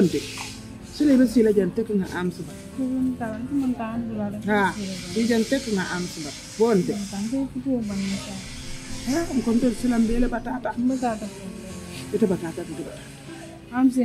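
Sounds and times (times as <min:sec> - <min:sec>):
steady high hiss: 0:07.9 - 0:12.9.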